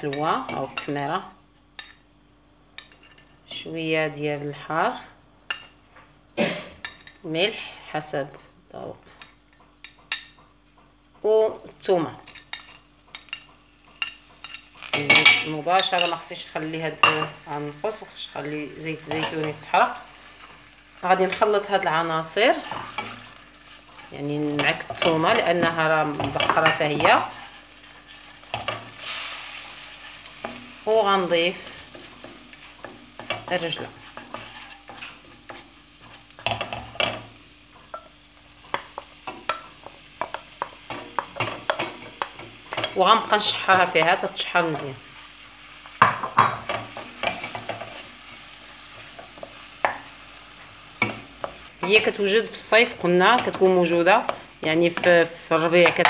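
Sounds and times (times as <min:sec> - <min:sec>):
spoon stirring and knocking pan: 0:09.2 - 0:11.3, 0:12.2 - 0:45.2, 0:45.8 - 0:56.0
oil sizzling in a pan: 0:11.6 - 0:56.0.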